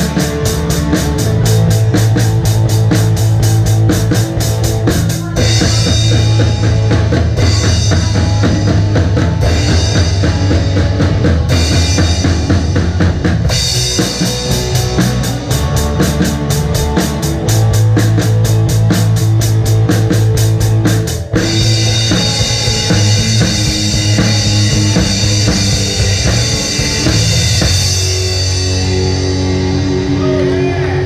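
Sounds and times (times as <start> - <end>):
bass guitar: 0.0 - 31.0
electric guitar: 0.0 - 31.0
rock drum kit beat: 0.0 - 31.0.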